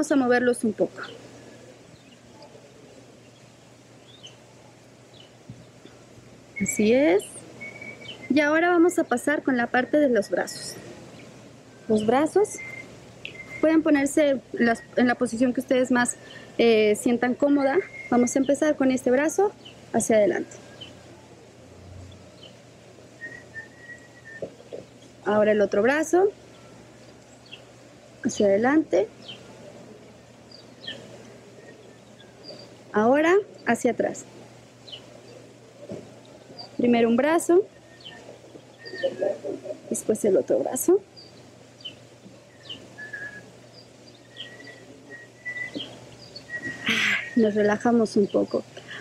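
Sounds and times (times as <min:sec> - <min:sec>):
faint outdoor ambience: 0:00.0 - 0:49.0
bird chirps: 0:03.2 - 0:04.5, 0:06.6 - 0:15.3, 0:17.4 - 0:18.7, 0:19.4 - 0:21.1, 0:30.5 - 0:32.8, 0:36.2 - 0:40.5, 0:41.1 - 0:49.0
bird whistling: 0:06.6 - 0:08.5, 0:11.7 - 0:13.9, 0:17.6 - 0:18.6, 0:23.2 - 0:24.6, 0:37.7 - 0:39.8, 0:41.8 - 0:43.5, 0:44.1 - 0:47.6.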